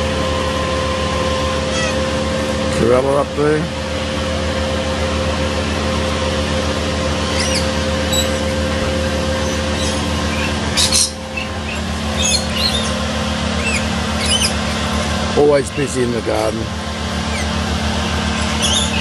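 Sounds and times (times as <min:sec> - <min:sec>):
low mechanical hum: 0:00.0 - 0:19.0
bird chirps: 0:07.3 - 0:08.6, 0:09.4 - 0:13.0, 0:13.6 - 0:14.9, 0:18.3 - 0:19.0.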